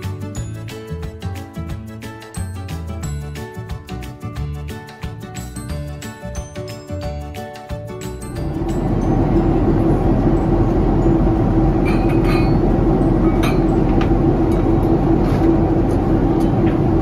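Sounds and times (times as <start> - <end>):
airliner cabin rumble: 8.3 - 17.0
glass bottles clinking: 11.8 - 14.7.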